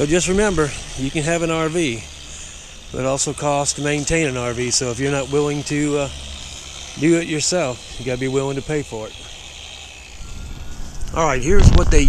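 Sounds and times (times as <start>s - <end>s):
wind rumble on microphone: 10.3s - 12.0s.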